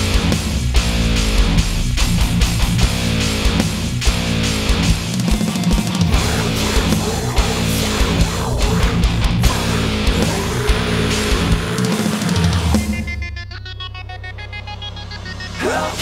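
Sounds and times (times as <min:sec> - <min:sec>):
heavy metal band playing: 0:00.0 - 0:16.0
stuttering higher pattern: 0:05.7 - 0:16.0.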